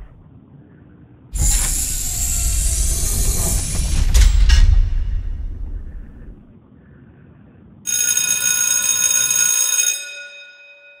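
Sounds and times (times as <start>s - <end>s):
high bell-like ringing tone: 7.9s - 11.0s.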